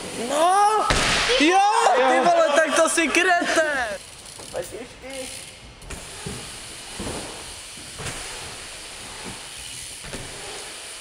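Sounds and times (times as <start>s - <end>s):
bike tyres rolling hiss: 0.0s - 11.0s.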